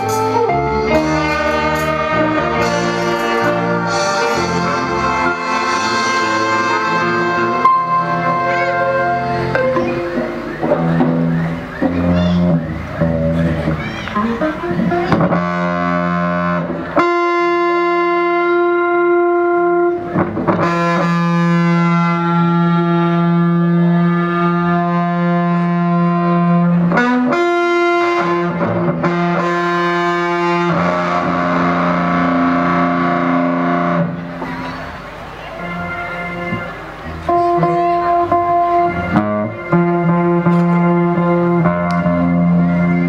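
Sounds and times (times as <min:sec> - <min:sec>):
distorted electric guitar lead notes: 0:00.0 - 0:43.0.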